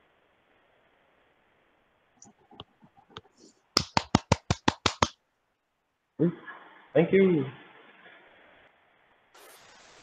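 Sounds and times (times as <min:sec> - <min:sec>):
rapid sharp clicks: 0:02.2 - 0:05.2.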